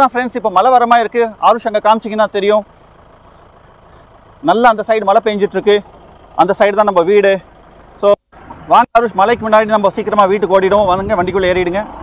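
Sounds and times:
man speaking: 0:00.0 - 0:02.7, 0:04.4 - 0:12.0.

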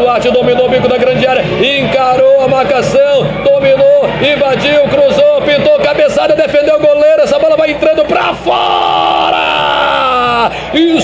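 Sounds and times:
man commentating excitedly: 0:00.0 - 0:11.0
man shouting long held shout: 0:07.9 - 0:11.0.

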